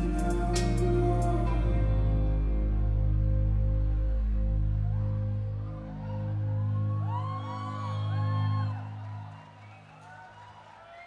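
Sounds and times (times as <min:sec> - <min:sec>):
audience whooping and cheering: 0:05.7 - 0:11.0.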